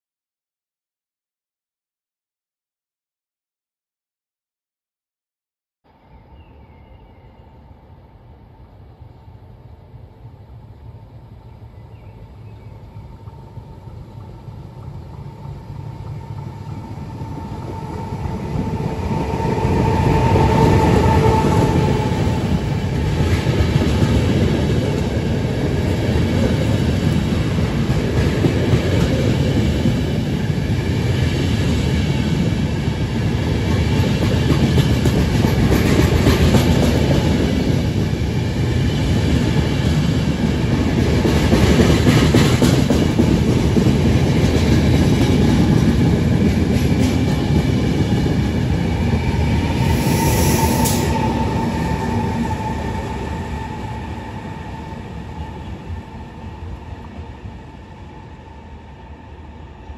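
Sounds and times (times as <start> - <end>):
train wheels rumbling on rails: 8.7 - 59.8
clickety-clack over rail joints: 13.2 - 49.9
brief high squeal: 49.9 - 51.2.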